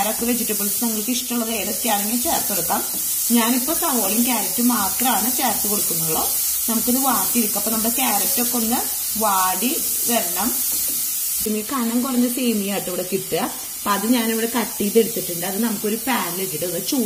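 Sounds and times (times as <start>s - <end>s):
vegetables sizzling in oil: 0.0s - 17.0s.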